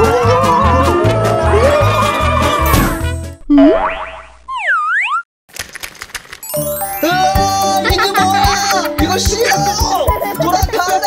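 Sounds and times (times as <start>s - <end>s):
cartoon upward swoop: 2.6s - 5.2s
wobbly cartoon boing: 2.7s - 5.2s
upbeat music: 6.5s - 11.0s.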